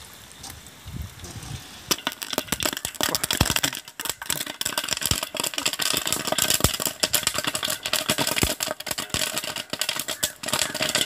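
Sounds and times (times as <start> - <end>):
popcorn kernels popping: 1.9 - 11.0.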